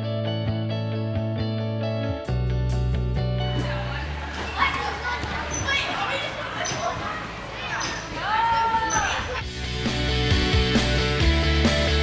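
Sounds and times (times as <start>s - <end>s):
echoing gym hall noise: 3.5s - 10.7s.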